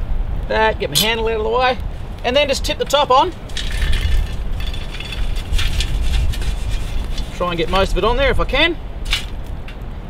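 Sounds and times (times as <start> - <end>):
low rumble of wind: 0.0 - 10.0
charcoal tumbling and scraping: 3.2 - 8.1.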